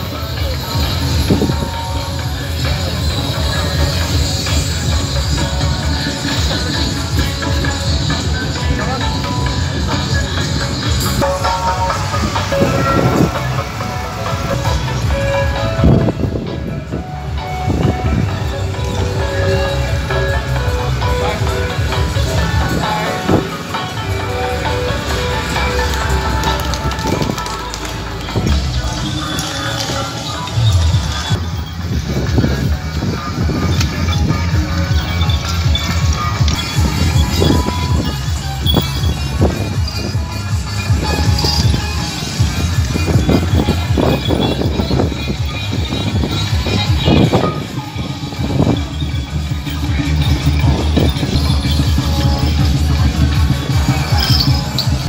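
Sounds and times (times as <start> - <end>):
held melody tones: 0.1 - 55.0
drums gongs and cymbals clattering: 28.4 - 55.0.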